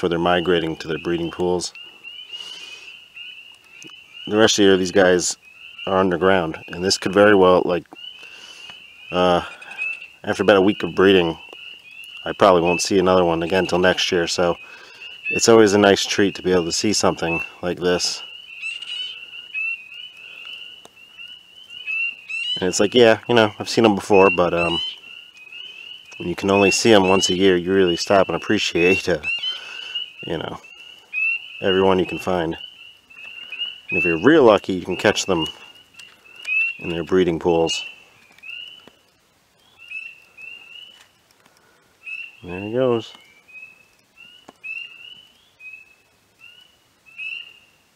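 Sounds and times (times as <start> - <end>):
spring peepers calling: 0.0 - 47.9.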